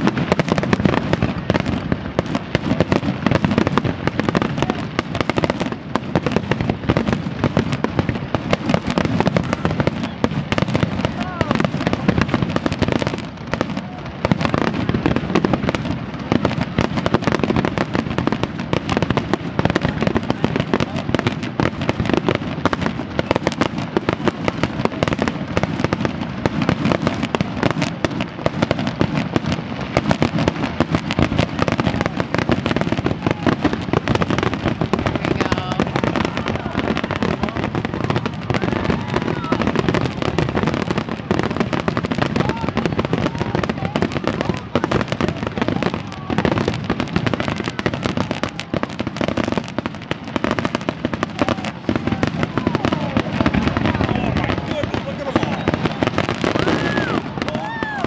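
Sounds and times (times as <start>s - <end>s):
fireworks bursting: 0.0s - 58.0s.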